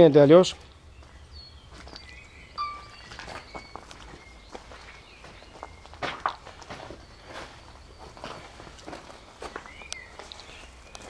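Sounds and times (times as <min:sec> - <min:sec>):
birds chirping: 0:00.0 - 0:11.0
footsteps on grass: 0:02.8 - 0:11.0.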